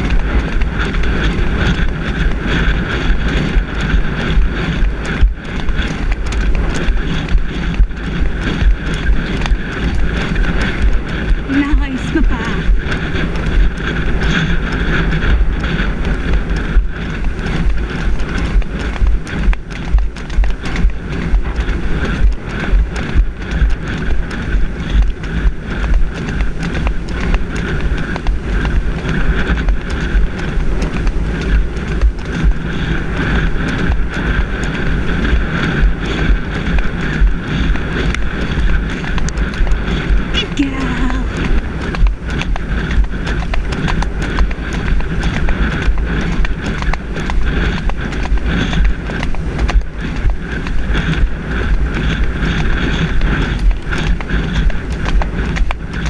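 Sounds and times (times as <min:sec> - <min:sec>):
hooves on dirt track: 0:00.0 - 0:56.0
low microphone rumble: 0:00.0 - 0:56.0.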